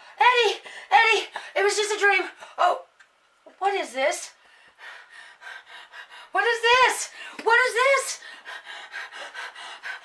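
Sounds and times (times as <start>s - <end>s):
woman breathing quickly: 0.0s - 1.6s, 4.4s - 6.4s, 7.1s - 7.4s, 8.0s - 10.0s.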